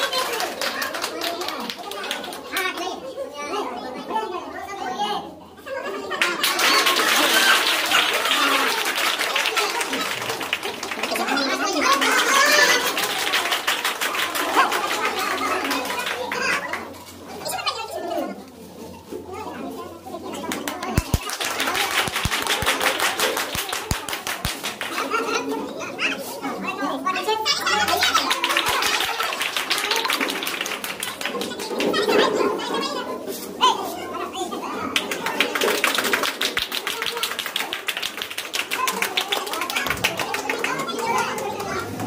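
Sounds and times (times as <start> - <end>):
group clapping: 0.0 - 3.0, 6.1 - 17.2, 20.4 - 25.4, 27.5 - 33.0, 34.8 - 42.0
voices chattering: 0.0 - 42.0.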